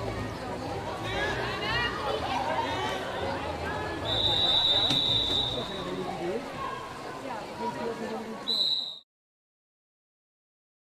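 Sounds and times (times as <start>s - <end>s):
crowd chatter: 0.0s - 9.0s
high whistle blast: 4.0s - 5.8s.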